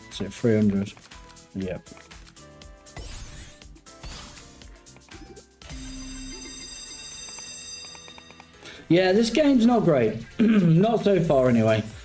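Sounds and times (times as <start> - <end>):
bright chiming tones: 5.6 - 9.0.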